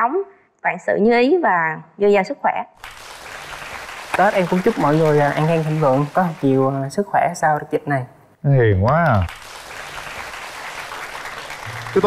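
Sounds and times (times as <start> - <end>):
audience clapping: 2.8 - 7.0, 8.8 - 12.0.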